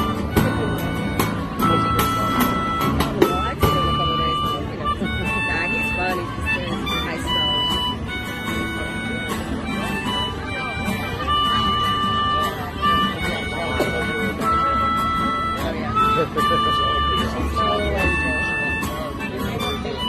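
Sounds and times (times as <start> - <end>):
acoustic guitars playing slow song: 0.0 - 20.0.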